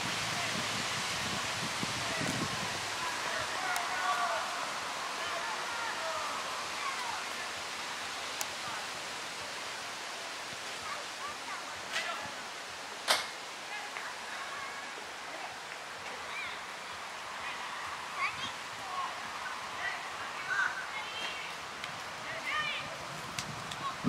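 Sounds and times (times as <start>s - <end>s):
open-air background hiss: 0.0s - 24.0s
distant players shouting: 2.0s - 7.6s.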